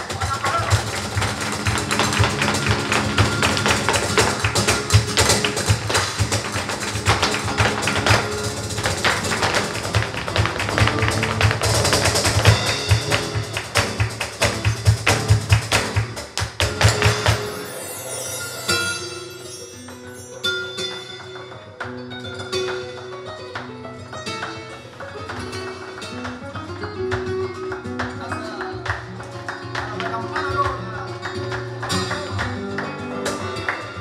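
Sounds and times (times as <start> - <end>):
footwork strikes on stage floor: 0.0 - 17.5
flamenco guitar: 0.0 - 34.0
percussion: 0.0 - 34.0.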